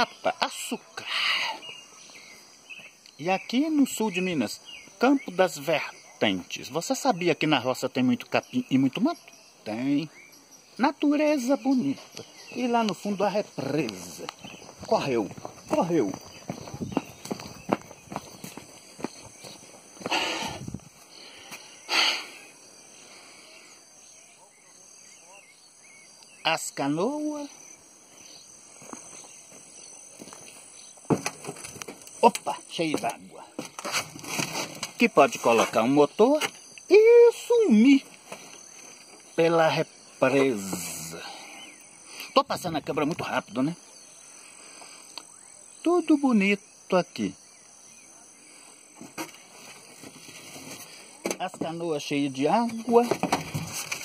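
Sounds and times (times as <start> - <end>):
frogs calling: 0.0 - 54.0
footsteps: 13.6 - 21.7, 28.7 - 36.6, 49.0 - 51.8, 52.6 - 54.0
plants rustling: 28.8 - 36.6, 49.0 - 54.0.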